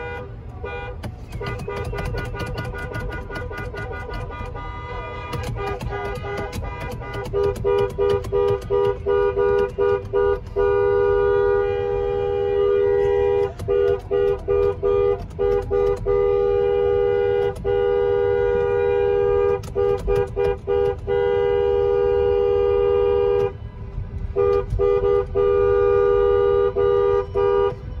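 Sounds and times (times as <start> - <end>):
two-tone car horn honking: 0.0 - 28.0.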